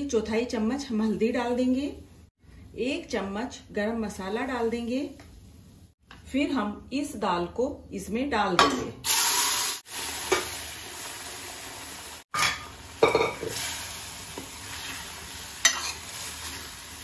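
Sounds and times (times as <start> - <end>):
food sizzling in hot fat: 9.0 - 17.0.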